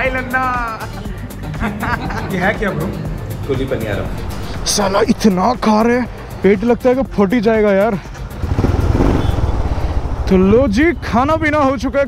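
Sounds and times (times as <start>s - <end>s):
man talking: 2.1s - 8.0s, 10.3s - 12.0s
wind and road noise: 8.1s - 12.0s
motorcycle engine pulsing: 8.4s - 12.0s.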